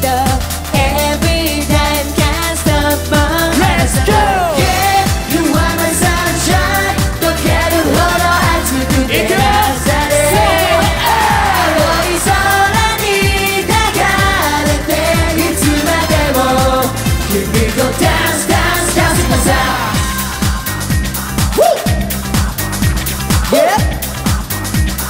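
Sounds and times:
live pop song: 0:00.0 - 0:25.0.

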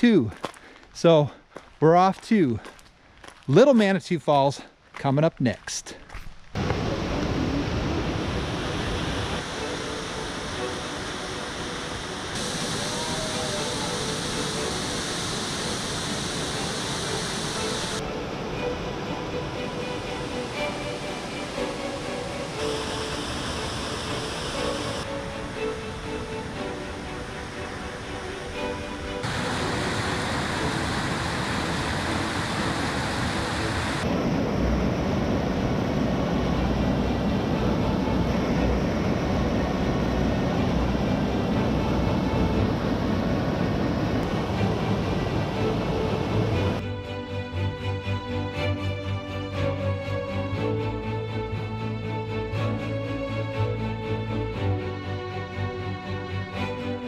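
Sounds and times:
waterfall and rapids rushing: 0:06.6 - 0:56.9.

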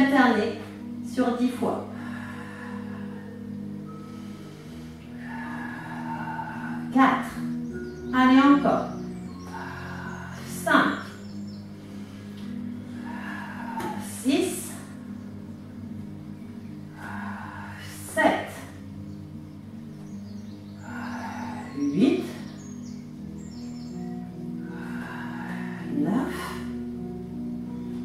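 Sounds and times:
soft sustained background music: 0:00.0 - 0:28.0
woman breathing out forcefully: 0:11.5 - 0:14.2.

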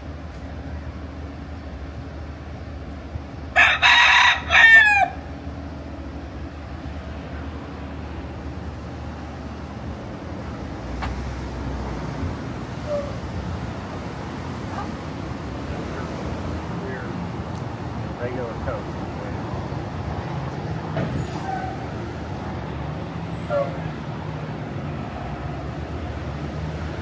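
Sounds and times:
street traffic hum: 0:00.0 - 0:27.0
rooster crowing: 0:03.5 - 0:05.3.

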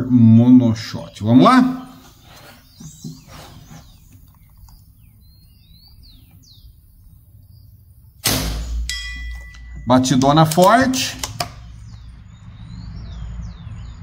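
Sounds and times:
birds chirping: 0:00.0 - 0:14.0
air rifle shot: 0:08.2 - 0:08.9
steel target ringing: 0:08.2 - 0:10.4.

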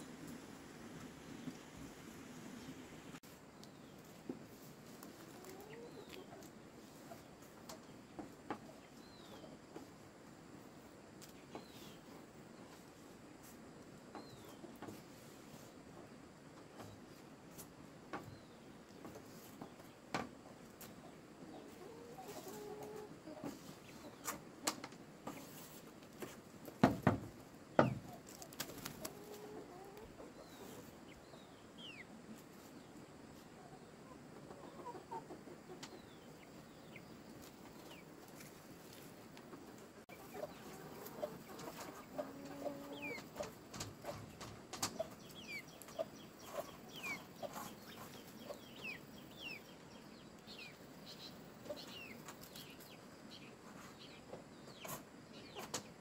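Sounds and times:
chickens clucking: 0:00.0 - 0:56.0.

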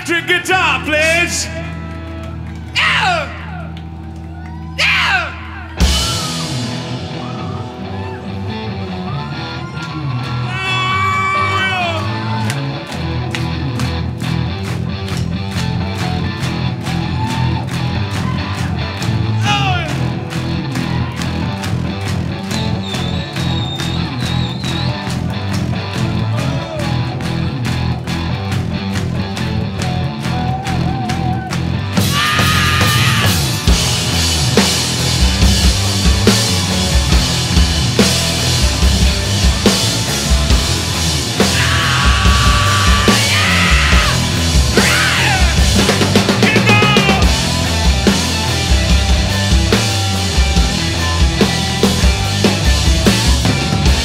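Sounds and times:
rock band playing: 0:00.0 - 0:54.0
electric guitar: 0:00.8 - 0:54.0
vocal shout: 0:02.7 - 0:03.7, 0:04.3 - 0:06.5, 0:09.1 - 0:12.6, 0:30.4 - 0:33.6, 0:41.4 - 0:47.4
driving drum beat: 0:05.8 - 0:08.2, 0:10.1 - 0:54.0.

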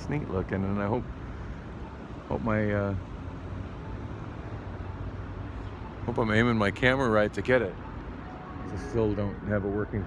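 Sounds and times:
distant traffic hum: 0:00.0 - 0:10.0.

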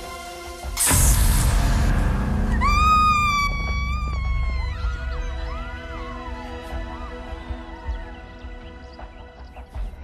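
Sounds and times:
horror film score: 0:00.0 - 0:10.0
loud noisy hit: 0:00.8 - 0:04.1
woman screaming: 0:02.5 - 0:07.2.

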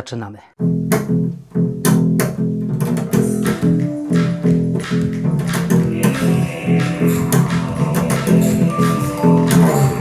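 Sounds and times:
upright bass plucked: 0:00.6 - 0:10.0
sharp percussive hits: 0:01.9 - 0:10.0.

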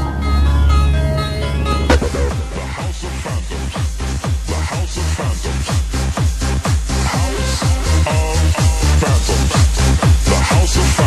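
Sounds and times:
dance track with pounding kick drum: 0:03.7 - 0:11.0.

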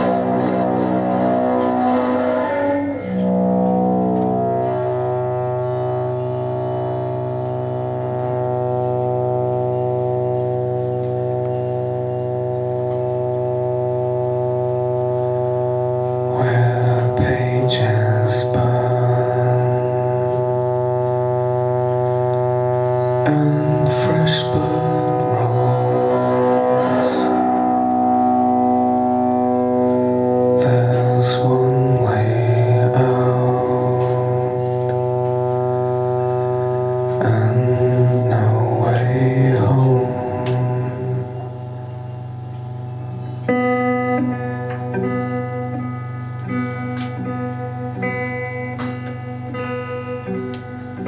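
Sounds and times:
electric guitars droning chord: 0:00.0 - 0:51.0.

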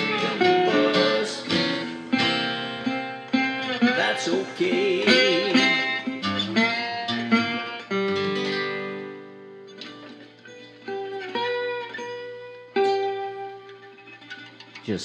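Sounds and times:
acoustic guitar: 0:00.0 - 0:15.0
resonator slide guitar: 0:00.0 - 0:15.0.

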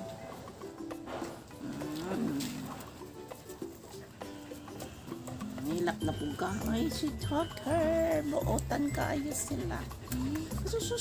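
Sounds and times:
music with held notes: 0:00.0 - 0:11.0
person speaking: 0:05.6 - 0:11.0.

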